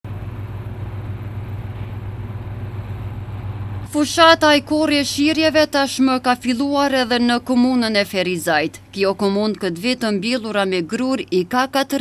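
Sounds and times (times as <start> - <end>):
combine harvester running: 0.0 - 5.6.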